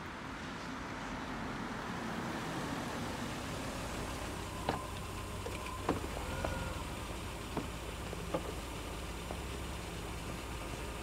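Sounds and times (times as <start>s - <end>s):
car engine rumbling: 0.0s - 11.0s.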